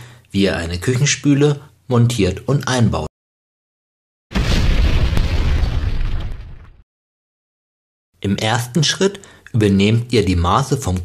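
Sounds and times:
heavy explosion blast: 4.3s - 6.8s.

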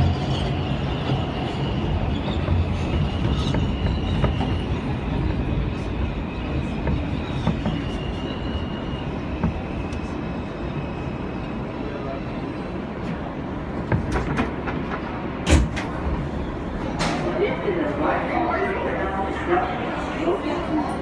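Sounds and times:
subway car rumbling on track: 0.0s - 21.0s.

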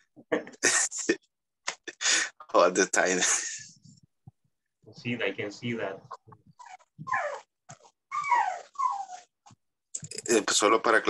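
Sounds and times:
small dog whining: 6.5s - 9.5s.

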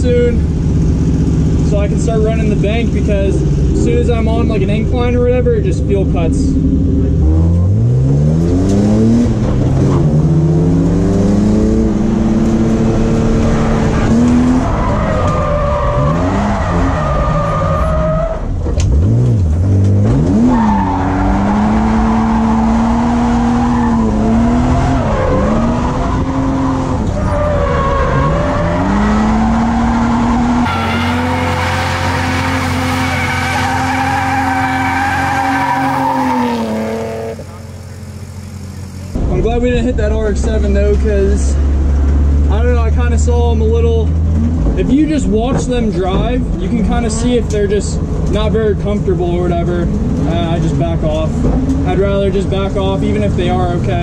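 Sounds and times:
car engine revving: 0.0s - 54.0s
tyre screech: 20.4s - 39.0s.

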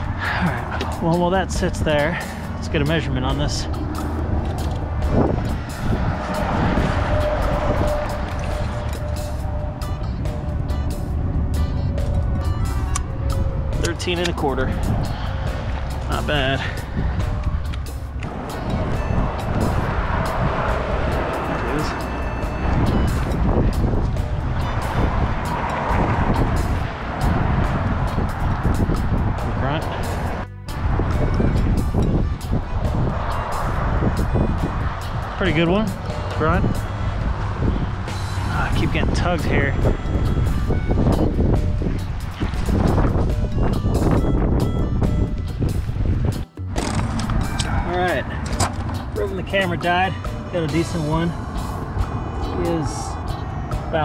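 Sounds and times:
music: 0.0s - 54.0s
strong wind on microphone: 0.0s - 54.0s.

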